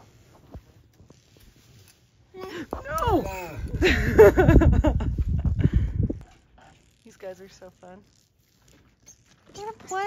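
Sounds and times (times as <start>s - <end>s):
squirrel claws scampering on concrete: 6.2s - 10.0s.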